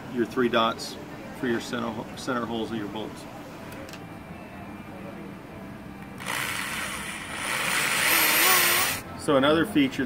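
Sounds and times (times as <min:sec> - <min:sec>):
electric drill whining: 0:06.2 - 0:09.0.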